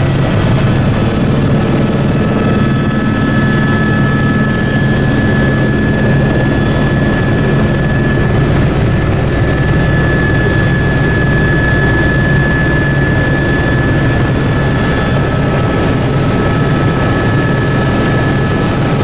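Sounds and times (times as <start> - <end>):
helicopter engine and rotor drone: 0.0 - 19.0
high whine: 0.0 - 19.0.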